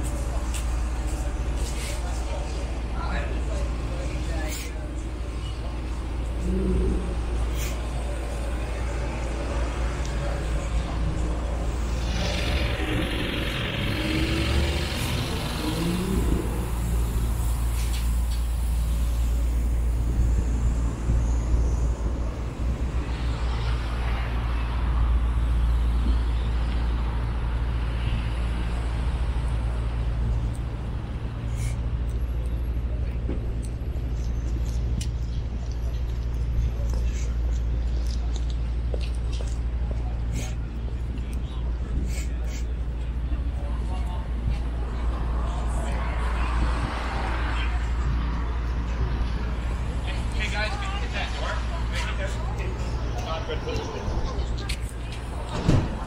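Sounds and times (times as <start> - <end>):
scattered voices: 0.0 - 25.4, 29.7 - 56.0
road traffic rumble: 0.0 - 56.0.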